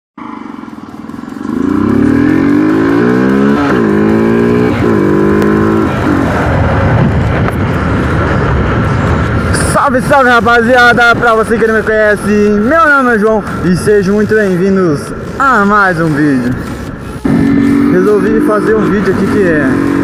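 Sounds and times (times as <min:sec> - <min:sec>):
motorcycle engine revving: 0:00.2 - 0:09.4, 0:14.3 - 0:20.0
wind and road noise: 0:00.2 - 0:20.0.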